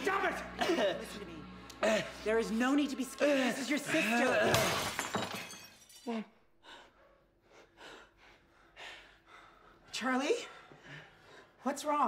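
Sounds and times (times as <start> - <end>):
heavy breathing: 6.6 - 11.7.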